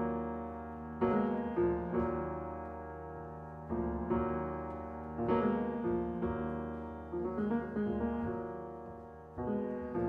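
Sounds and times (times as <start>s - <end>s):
jazz piano chords: 0.0s - 10.0s.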